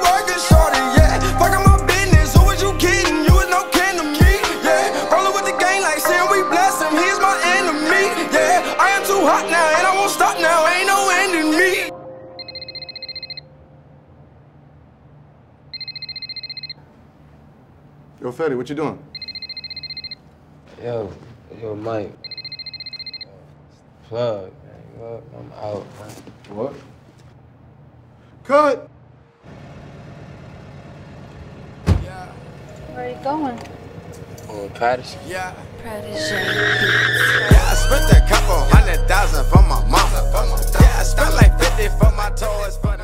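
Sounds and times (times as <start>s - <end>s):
telephone ringing: 4.8s - 13.6s, 15.7s - 16.9s, 19.1s - 20.3s, 22.2s - 23.5s
car idling rumble: 29.4s - 36.0s
loud thump: 31.8s - 32.2s.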